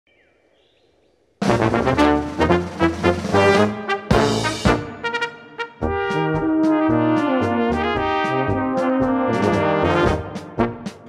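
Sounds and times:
faint birdsong: 0.0 - 1.4
brass band playing polka: 1.4 - 11.0.

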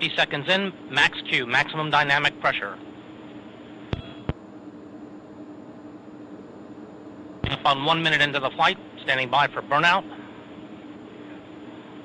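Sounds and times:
audio line hiss and hum: 0.0 - 12.0.

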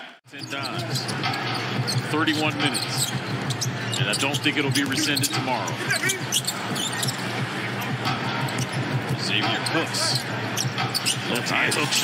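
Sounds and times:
crowd noise in large hall: 0.0 - 12.0.

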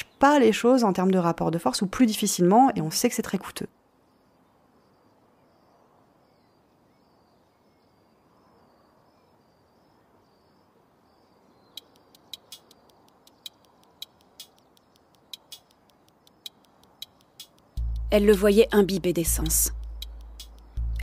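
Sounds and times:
soft high chirps: 11.3 - 18.2
sharp clicks: 11.8 - 17.8.

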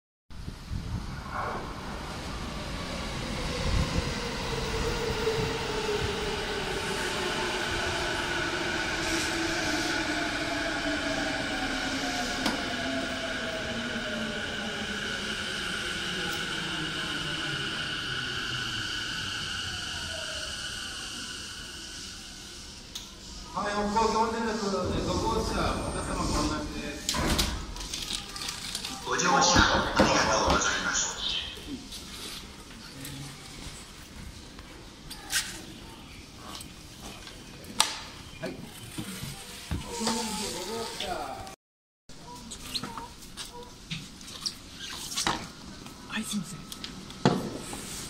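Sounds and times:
train braking: 5.5 - 27.8.

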